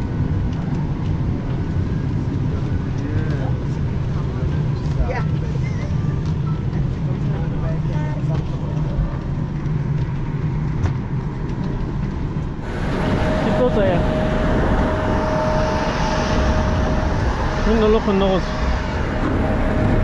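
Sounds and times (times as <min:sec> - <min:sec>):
airliner cabin hum: 0:00.0 - 0:20.0
steady high whine: 0:00.0 - 0:20.0
passengers murmuring: 0:02.4 - 0:09.6.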